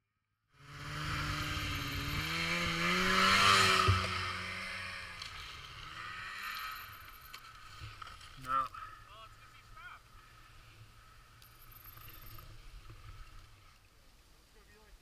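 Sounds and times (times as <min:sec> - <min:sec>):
snowmobile engine under load: 0:00.5 - 0:13.6.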